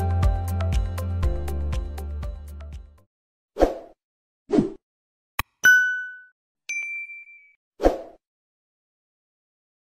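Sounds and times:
ding: 5.6s - 7.6s
higher ding: 5.6s - 7.6s.

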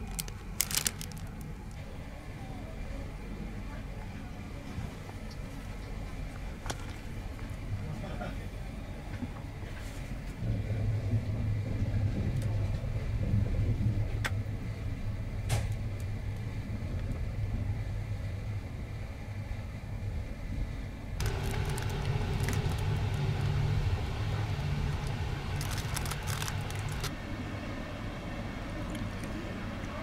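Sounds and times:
train rumbling inside compartment: 0.0s - 30.0s
light crackling: 21.2s - 27.1s.

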